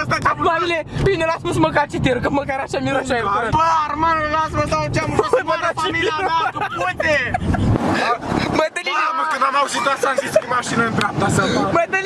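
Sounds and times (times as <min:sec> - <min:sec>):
rush of noise with low rumble: 0:00.0 - 0:08.7
car road noise: 0:00.0 - 0:12.0
men shouting and chanting: 0:00.0 - 0:12.0.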